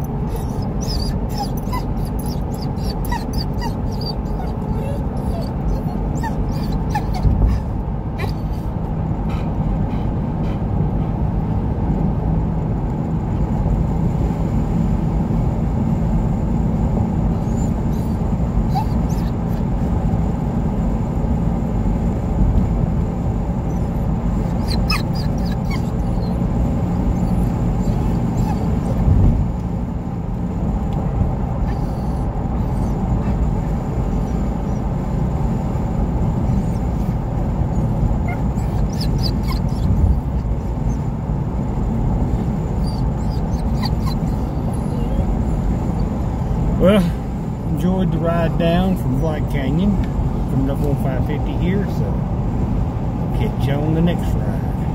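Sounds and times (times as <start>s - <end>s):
dog whining: 0.0s - 10.6s, 17.3s - 19.9s, 23.6s - 29.4s, 31.6s - 35.1s, 36.3s - 41.1s, 42.3s - 46.2s
car road and engine noise: 0.0s - 54.9s.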